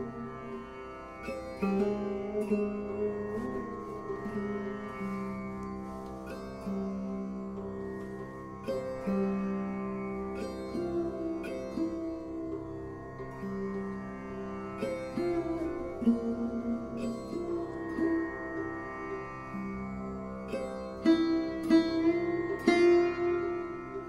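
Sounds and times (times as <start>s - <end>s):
sarode plucked melody: 0.0s - 24.0s.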